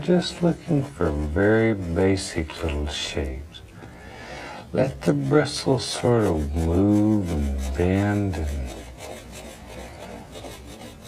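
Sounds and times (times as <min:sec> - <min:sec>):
brush bristles scrubbing canvas: 0:00.0 - 0:02.8, 0:04.8 - 0:11.0.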